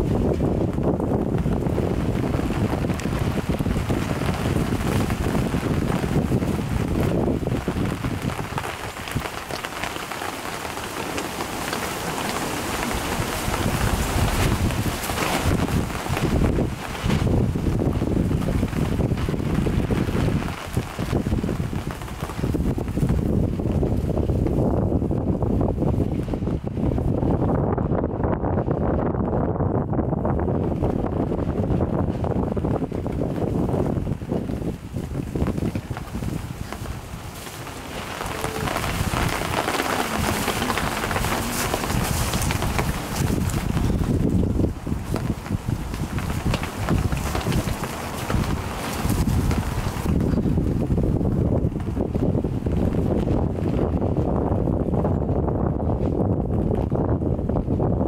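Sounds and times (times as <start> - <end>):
rain hiss: 0.0 - 24.7, 31.0 - 53.0
wind buffeting microphone: 0.0 - 58.0.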